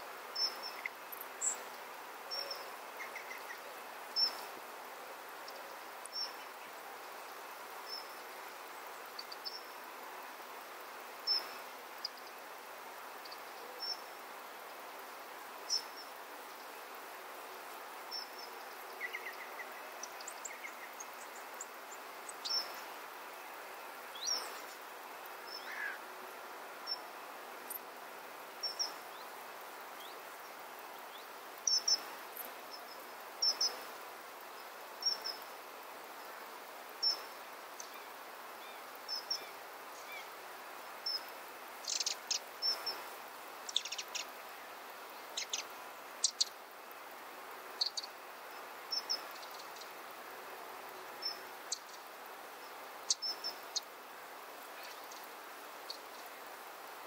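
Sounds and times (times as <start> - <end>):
outdoor background hiss: 0.0 - 57.0.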